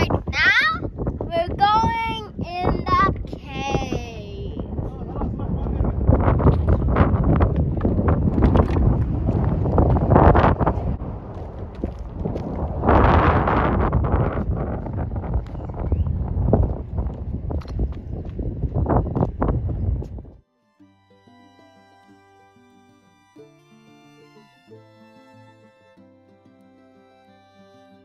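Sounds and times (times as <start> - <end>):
wind buffeting microphone: 0.0 - 20.4
footsteps on gravel: 6.6 - 15.7, 16.4 - 20.2.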